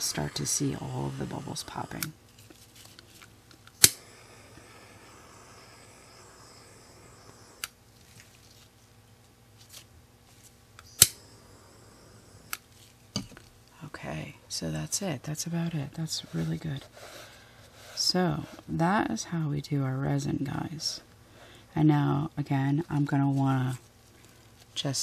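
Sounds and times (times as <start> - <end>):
sharp clicks: 3.7 - 4.0.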